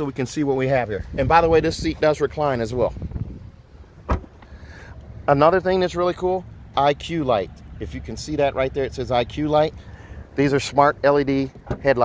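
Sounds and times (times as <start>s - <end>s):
faint low rumbling: 0.0s - 12.0s
sharp thump: 4.0s - 4.4s.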